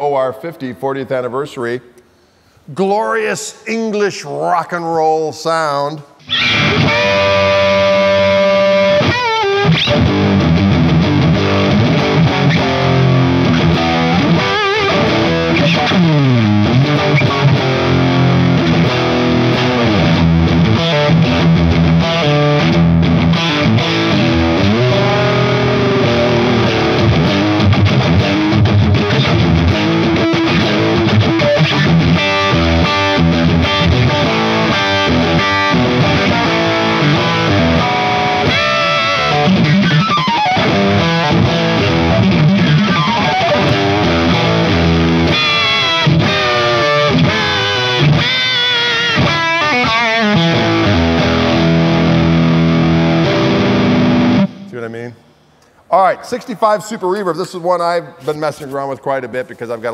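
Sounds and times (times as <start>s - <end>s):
distorted electric guitar riffs: 6.1s - 56.2s.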